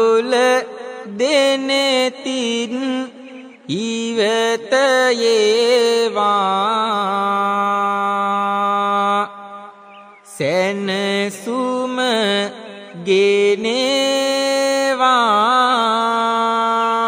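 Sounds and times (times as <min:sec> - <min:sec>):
man chanting melodically: 0:00.0 - 0:17.0.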